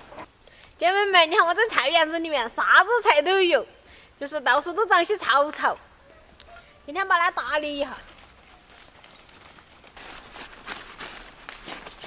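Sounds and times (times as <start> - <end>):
plants rustling and crackling: 5.5 - 12.0.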